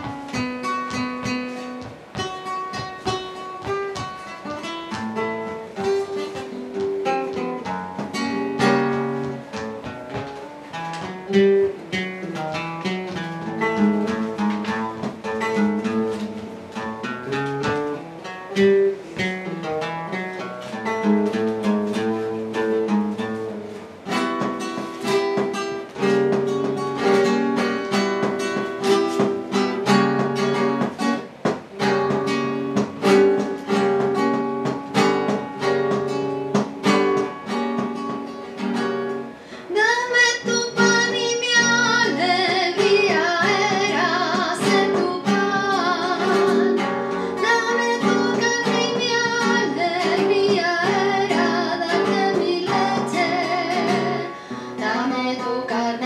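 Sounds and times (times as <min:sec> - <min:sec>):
flamenco guitar: 0:00.0 - 0:56.0.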